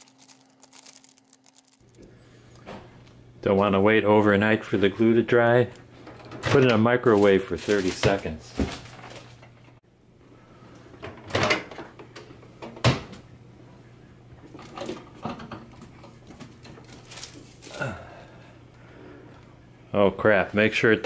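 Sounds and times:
steady low hum: 0:15.8 - 0:21.0.

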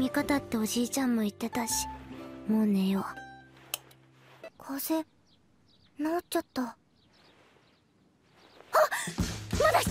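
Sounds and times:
faint bird chirps: 0:04.3 - 0:09.2.

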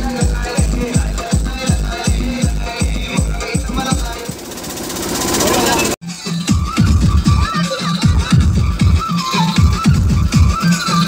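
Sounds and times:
rapid drum roll: 0:00.2 - 0:06.0.

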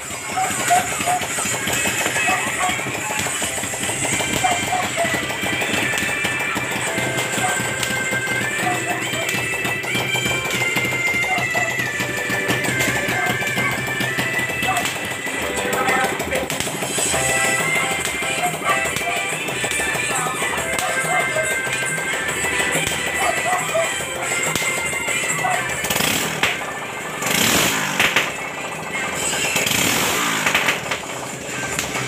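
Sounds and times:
music playing: 0:00.0 - 0:32.0.

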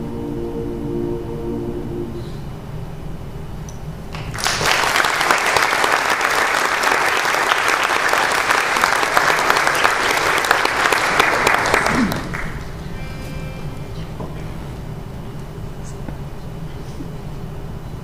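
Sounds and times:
audience applauding: 0:04.1 - 0:12.8.

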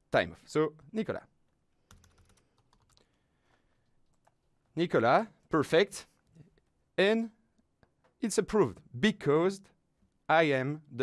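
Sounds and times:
faint keyboard typing: 0:00.8 - 0:04.8.

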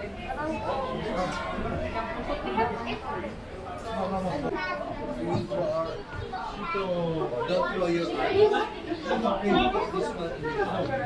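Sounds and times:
children's voices: 0:00.0 - 0:11.0
crowd chatter: 0:00.0 - 0:11.0.

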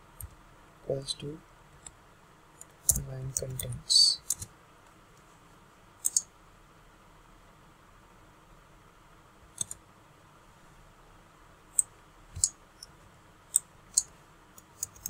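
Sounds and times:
faint steady hiss: 0:00.0 - 0:15.0
computer mouse clicks: 0:02.6 - 0:04.5, 0:06.0 - 0:06.3, 0:09.6 - 0:09.8, 0:11.7 - 0:12.9, 0:13.5 - 0:15.0.

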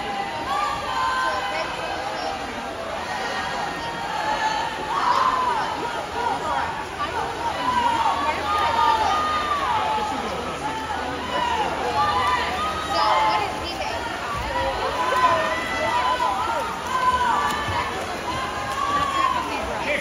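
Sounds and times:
crowd cheering and calling out: 0:00.0 - 0:20.0.

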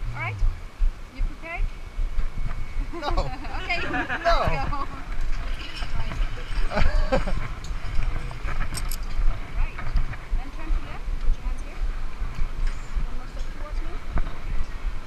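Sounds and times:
indistinct voices: 0:00.0 - 0:01.6
low rumble: 0:00.0 - 0:15.0.

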